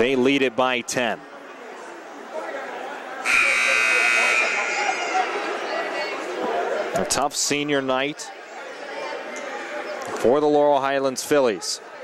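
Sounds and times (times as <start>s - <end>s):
crowd murmur: 0.0s - 12.0s
scoreboard horn: 3.2s - 5.2s.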